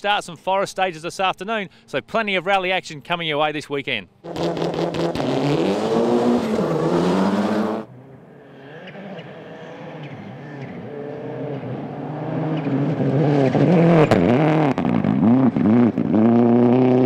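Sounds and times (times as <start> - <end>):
distant rally car engine: 4.2 - 17.0
rally car engine at full throttle: 4.2 - 17.0.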